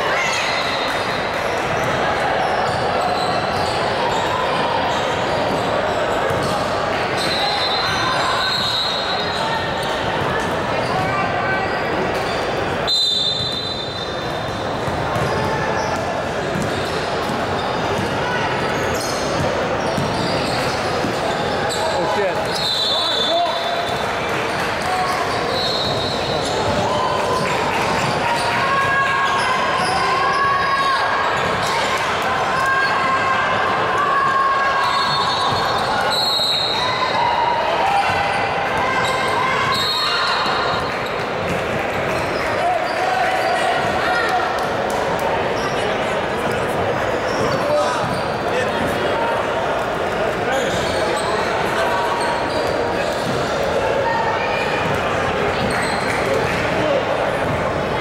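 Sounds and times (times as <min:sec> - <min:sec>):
players shouting: 0:24.7 - 0:40.9.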